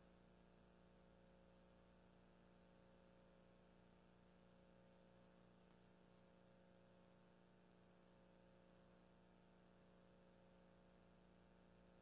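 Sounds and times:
faint steady hum and hiss: 0.0 - 12.0.

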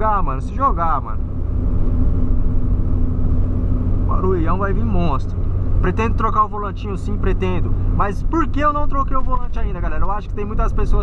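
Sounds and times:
car cabin engine and tyre rumble: 0.0 - 11.0.

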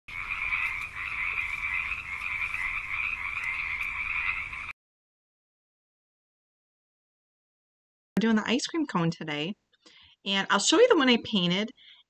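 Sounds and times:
frog trilling: 0.1 - 4.7.

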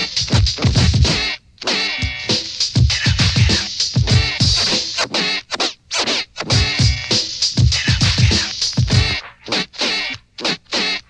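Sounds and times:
hip hop drum machine beat: 0.0 - 11.0
turntable scratching: 0.0 - 11.0.

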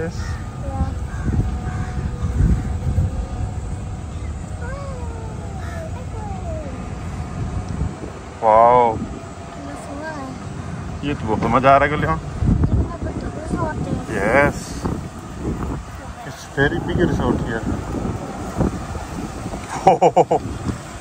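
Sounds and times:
buggy rumbling: 0.0 - 21.0
road noise: 0.0 - 21.0
wind: 0.0 - 21.0.

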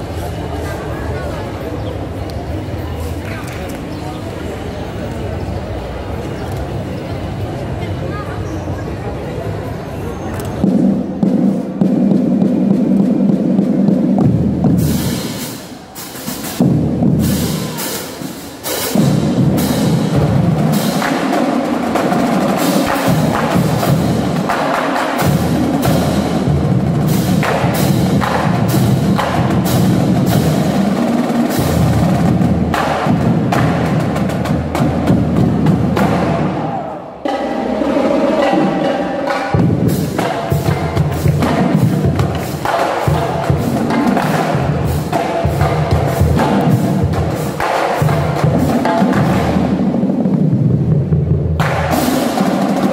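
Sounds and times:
snare drums playing: 10.6 - 36.6, 37.2 - 50.8.

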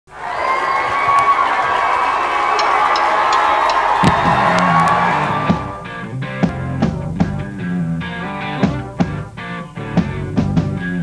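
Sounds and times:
crowd cheering and shouting: 0.1 - 6.1
rock band playing: 2.6 - 11.0.

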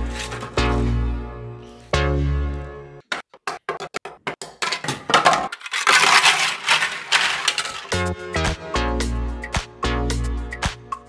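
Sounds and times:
plastic parts clattering on table: 0.0 - 0.6, 4.4 - 8.2.

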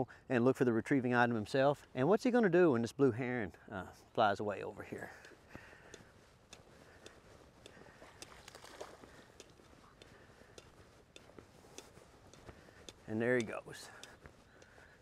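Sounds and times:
light ticks and rustles: 1.5 - 15.0.

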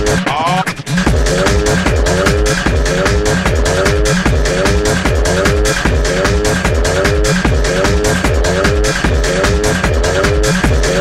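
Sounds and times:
sliding synth riff: 0.0 - 11.0
techno kick drum: 0.0 - 11.0.

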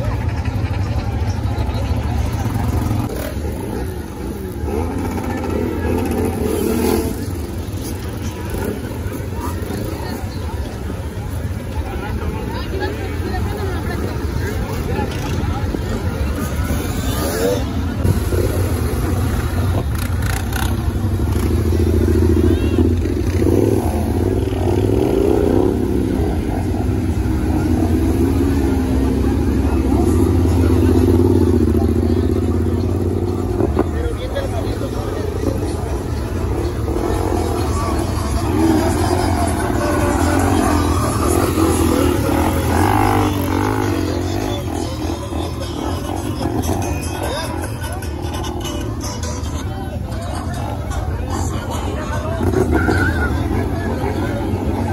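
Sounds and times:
crowd chatter: 0.0 - 54.9
motorbike engines revving: 0.0 - 54.9.

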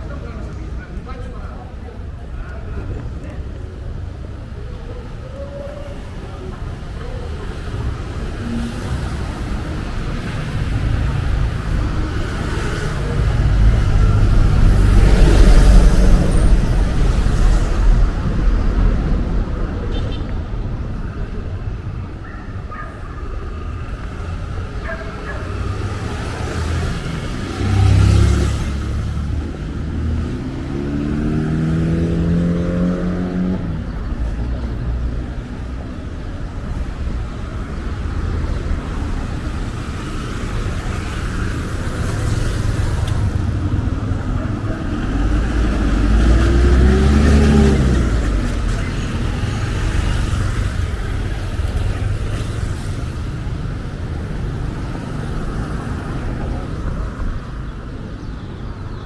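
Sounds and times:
traffic hum: 0.0 - 59.0
vehicles passing: 0.0 - 59.0
loud vehicle passing: 7.6 - 19.8, 23.6 - 33.9, 38.8 - 57.6.

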